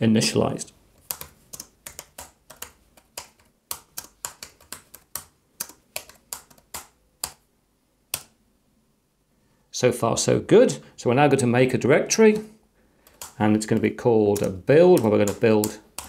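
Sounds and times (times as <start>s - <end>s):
keyboard typing: 1.0s - 7.4s, 12.2s - 16.0s.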